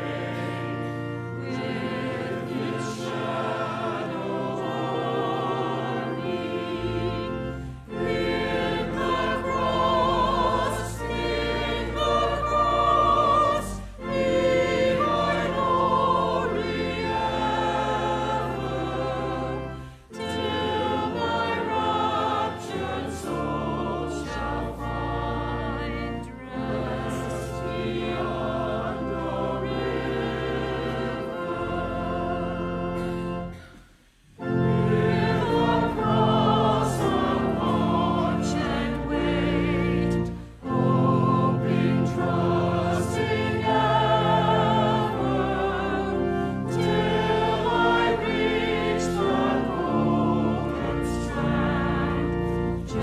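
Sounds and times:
church choir singing: 0:00.0 - 0:53.0
sustained low accompaniment: 0:00.0 - 0:53.0.

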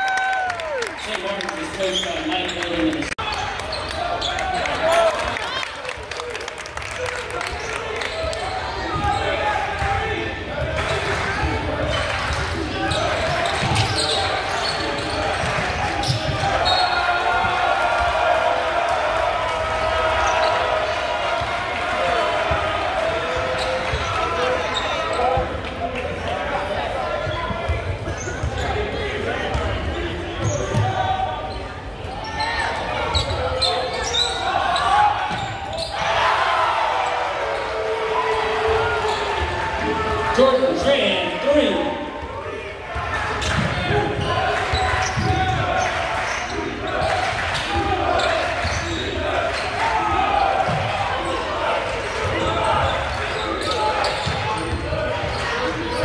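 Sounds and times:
spectators talking and shouting: 0:00.0 - 0:56.0.

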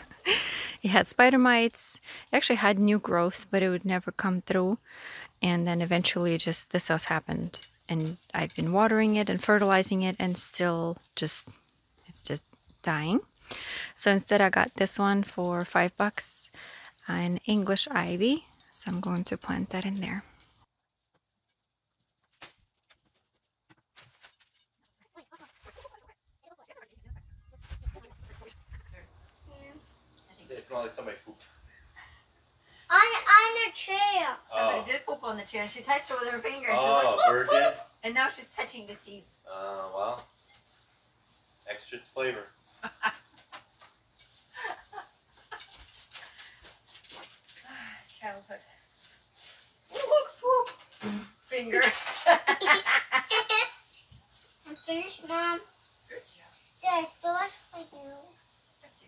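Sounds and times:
seeds scratching and rustling: 0:05.5 - 0:12.8, 0:20.9 - 0:29.1, 0:45.3 - 0:51.0.

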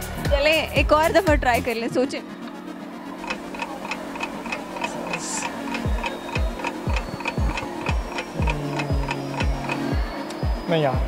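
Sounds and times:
ticking clock: 0:03.2 - 0:09.9.

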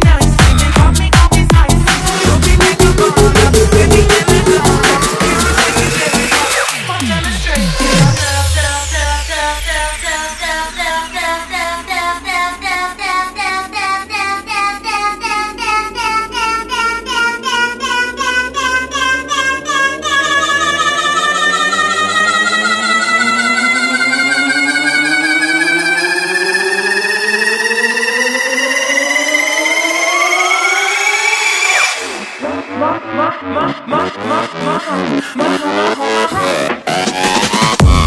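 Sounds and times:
electronic dance music: 0:00.0 - 0:38.0
rising synth sweep: 0:00.0 - 0:38.0.

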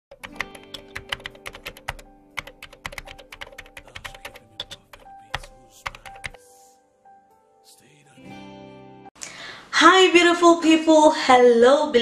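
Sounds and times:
keyboard typing clicks: 0:00.1 - 0:06.4
soft background music: 0:00.1 - 0:12.0.

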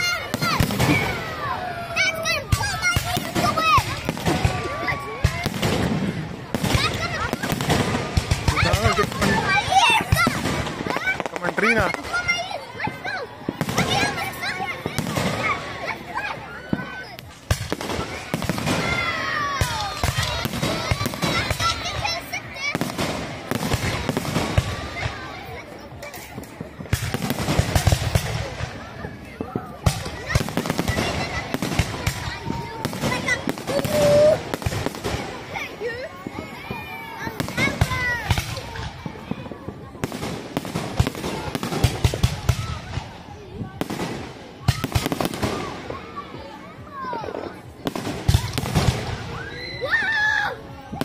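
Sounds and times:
fireworks bangs and crackling: 0:00.0 - 0:51.0.

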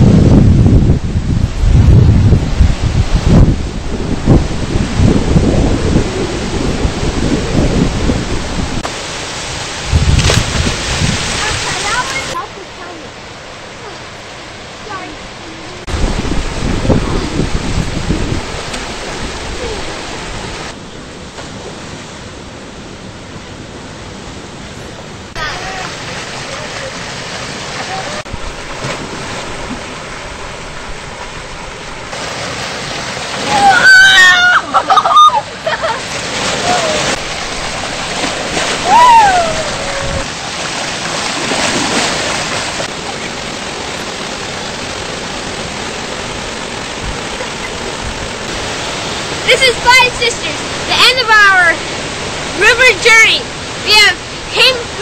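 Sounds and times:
wind buffeting microphone: 0:00.0 - 0:12.5, 0:14.6 - 0:22.2, 0:36.5 - 0:55.0
rushing river water: 0:00.0 - 0:55.0.

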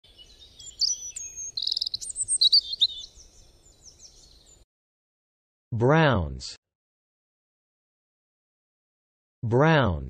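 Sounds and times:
songbirds chirping and singing: 0:00.0 - 0:04.6.

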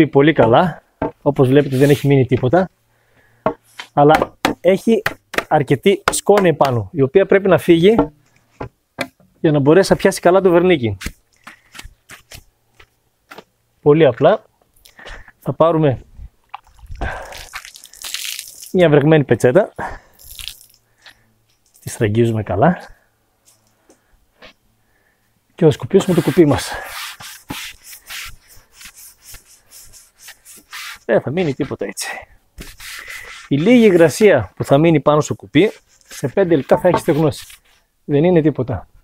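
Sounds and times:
cloth wiping wooden oar: 0:01.4 - 0:02.2, 0:26.0 - 0:31.9, 0:32.6 - 0:34.4, 0:35.6 - 0:37.8.

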